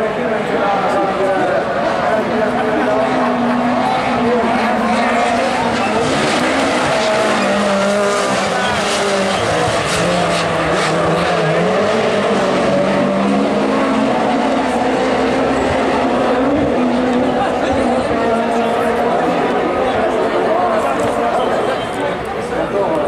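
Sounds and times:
race car engines revving: 0:00.0 - 0:23.0.

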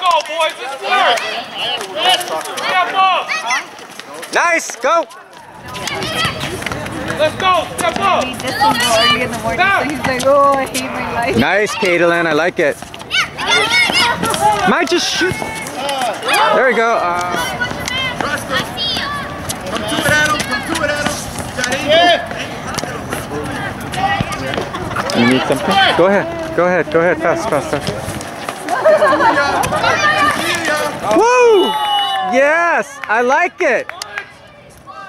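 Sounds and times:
voices calling out: 0:00.0 - 0:35.0.

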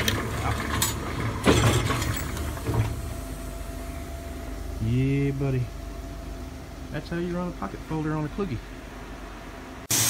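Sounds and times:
press running drone: 0:02.1 - 0:10.0.

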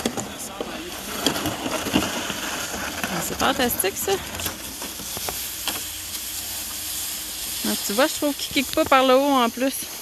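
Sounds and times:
plastic sled scraping over snow: 0:00.0 - 0:05.8.

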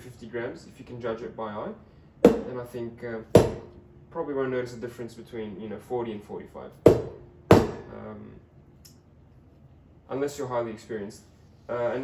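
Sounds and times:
portafilter knocking on knock box: 0:03.4 - 0:03.7, 0:06.9 - 0:07.8.

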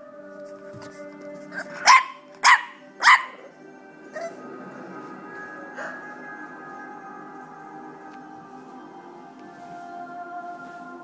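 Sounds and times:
puppy barking: 0:01.6 - 0:03.5.

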